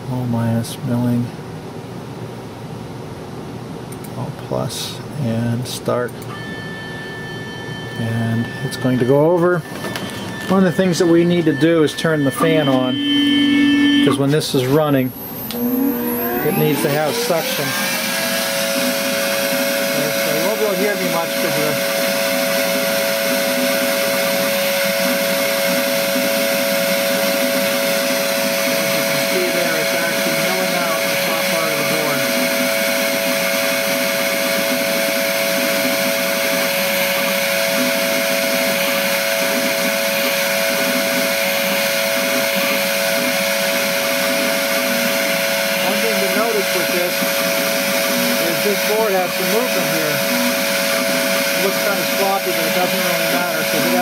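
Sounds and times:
suction fan rushing: 4.0 - 54.0
milling spindle whine: 6.2 - 54.0.

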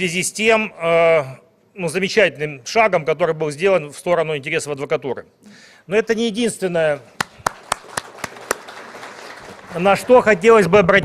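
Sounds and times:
man clapping hands: 7.2 - 10.2
faint audience applause: 7.2 - 10.7.

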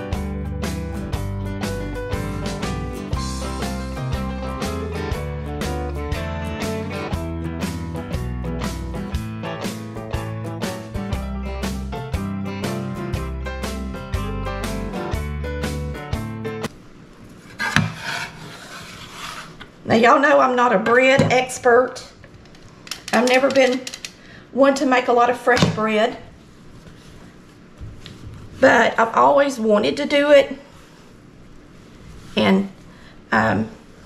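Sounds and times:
instrumental music with steady beat: 0.0 - 16.7.

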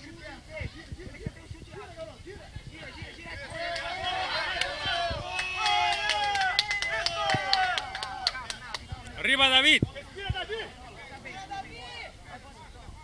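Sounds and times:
crowd shouting and yelling: 0.0 - 13.0.

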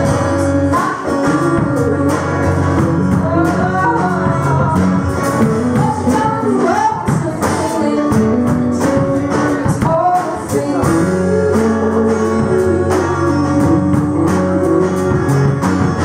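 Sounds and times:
woman singing: 0.0 - 15.2
drum kit beat: 0.0 - 16.0.

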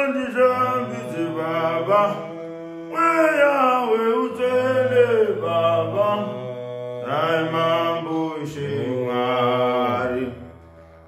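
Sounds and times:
two men singing gospel: 0.0 - 10.5.

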